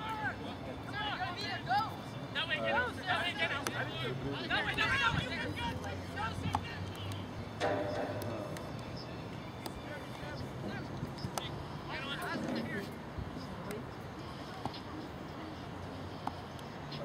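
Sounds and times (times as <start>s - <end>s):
distant shouts and calls: 0.0s - 15.6s.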